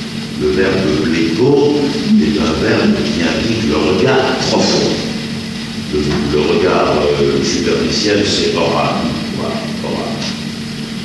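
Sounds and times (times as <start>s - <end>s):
electrical hum and tape hiss: 0.0s - 11.0s
faint voices: 0.4s - 5.3s, 5.9s - 10.4s.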